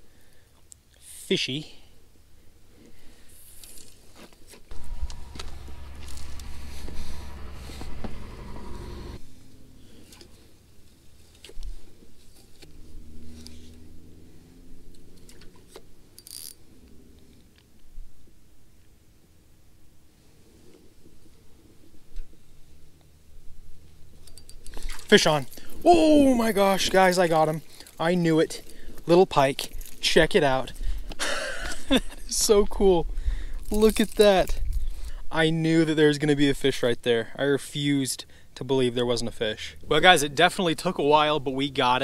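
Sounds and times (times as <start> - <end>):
fishing reel whirring: 4.7 - 9.2, 16.2 - 16.6
clicks and rattles of rod handling: 24.2 - 25.6.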